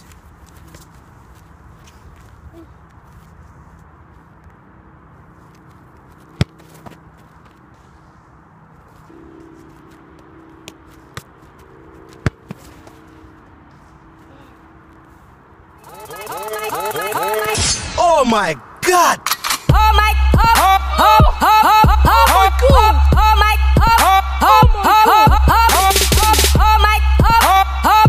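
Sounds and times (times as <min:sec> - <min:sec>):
outdoor background noise: 0:00.0 - 0:28.0
football thudding against foot: 0:06.1 - 0:07.6, 0:10.2 - 0:13.0
faint steady hum: 0:07.4 - 0:17.5.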